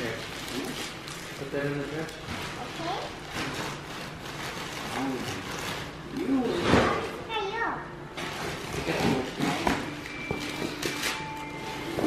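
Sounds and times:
wrapping paper rustling: 0.0s - 6.2s.

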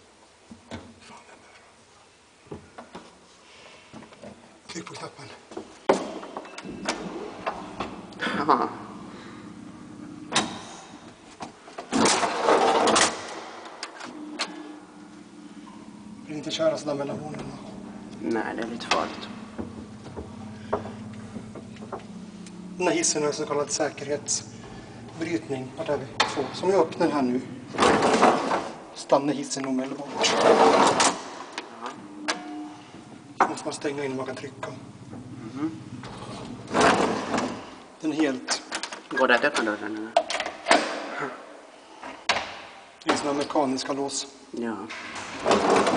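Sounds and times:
low steady hum: 4.5s - 38.7s.

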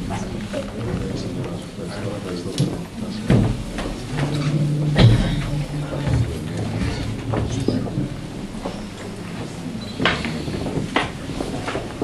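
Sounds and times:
people talking quietly: 0.0s - 12.0s
steady low rumble: 3.7s - 9.8s.

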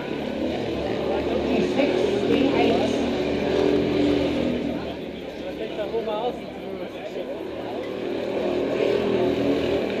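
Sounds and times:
go-kart engine running: 0.0s - 10.0s.

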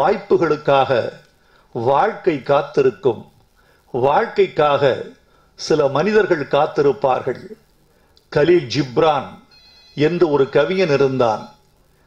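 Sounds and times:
man speaking into a microphone: 0.0s - 7.7s, 8.3s - 11.6s
phone ringing: 8.9s - 11.8s.

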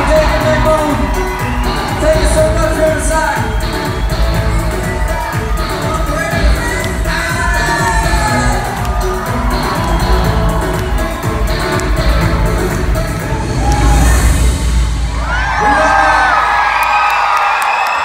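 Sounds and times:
live pop band with guitars: 0.0s - 14.7s
audience cheering and screaming: 0.0s - 18.0s.

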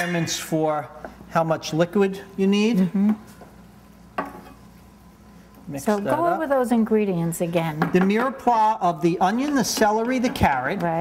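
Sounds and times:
wooden spoons stirring rice: 7.9s - 11.0s.

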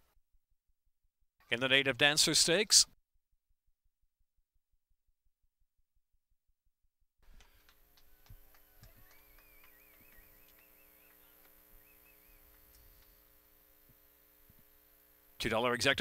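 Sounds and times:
faint electrical hum: 7.2s - 16.0s.

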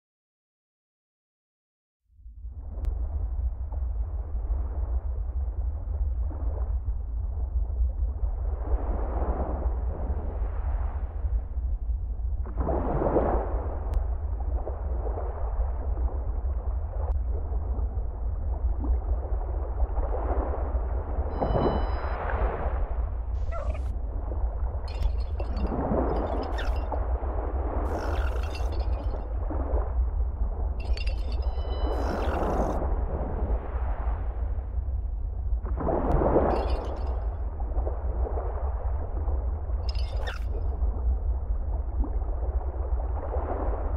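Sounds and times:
deep rumble drone: 11.1s - 43.3s
faint high crackles: 27.9s - 29.2s.

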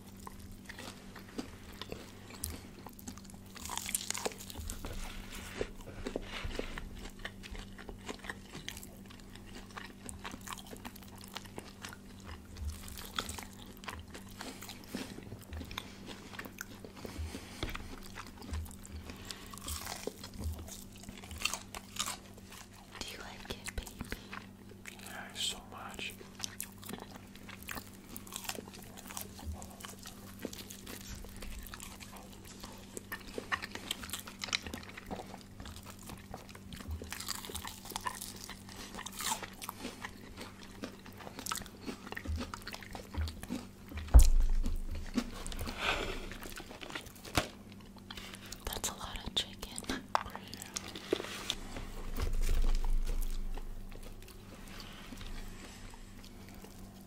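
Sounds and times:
crunching fried chicken: 0.0s - 57.0s
steady low hum: 0.0s - 57.0s
wet chewing: 0.0s - 57.0s.

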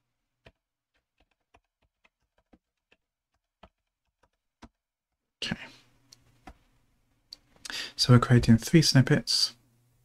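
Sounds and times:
faint keyboard typing: 0.4s - 4.8s.

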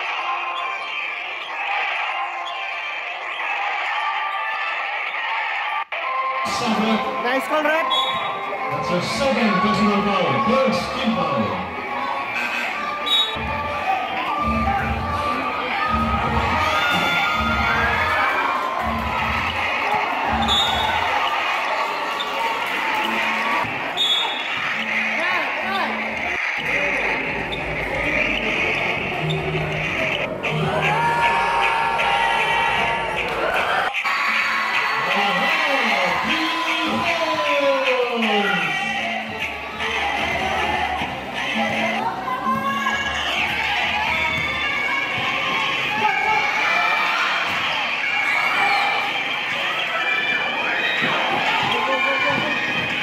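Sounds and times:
crowd talking and shouting: 0.0s - 53.0s
background music: 6.0s - 48.7s.

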